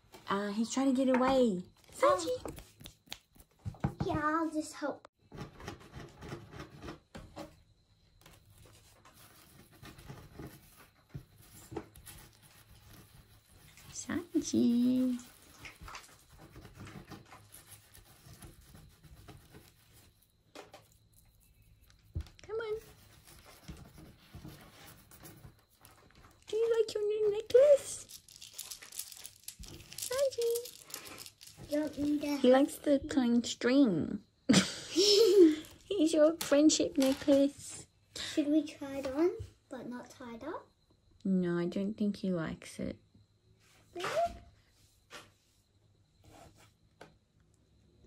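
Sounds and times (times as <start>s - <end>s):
threads and beads rustling: 8.3s - 32.9s, 35.2s - 37.8s
beaded necklace rustling and tapping: 19.4s - 32.7s.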